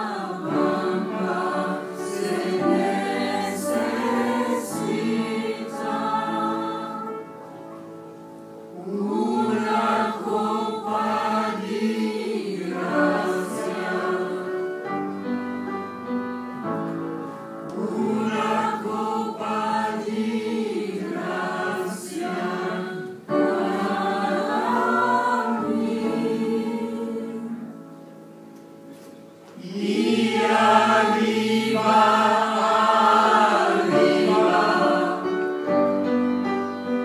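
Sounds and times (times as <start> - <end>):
choir singing: 0.0 - 7.8, 8.7 - 15.5, 17.6 - 28.0, 29.6 - 37.0.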